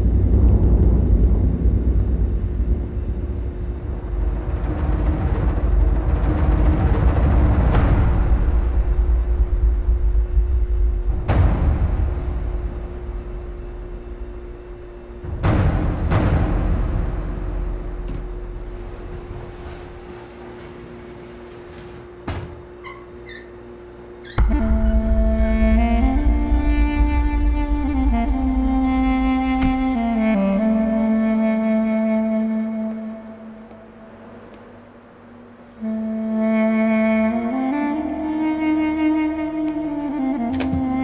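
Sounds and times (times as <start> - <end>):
deep low rumble: 0.0 - 20.6, 24.4 - 34.7
sliding sustained film score melody: 0.0 - 22.2, 23.9 - 41.0
quiet held drone: 0.0 - 41.0.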